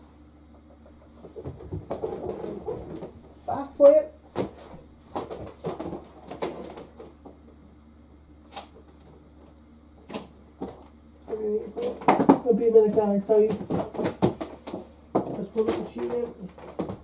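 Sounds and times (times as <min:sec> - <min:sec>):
knocks and clunks of washing machine: 0:10.0 - 0:17.0.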